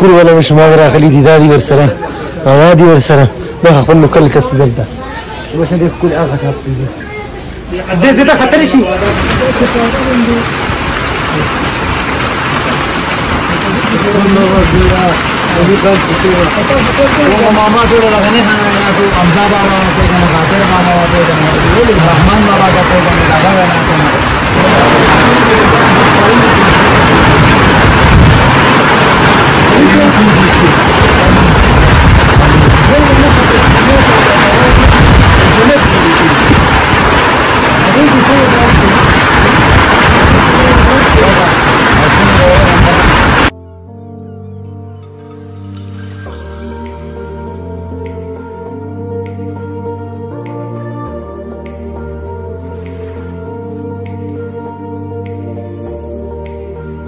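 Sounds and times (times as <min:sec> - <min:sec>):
heavy rain falling: 0:00.0 - 0:43.5.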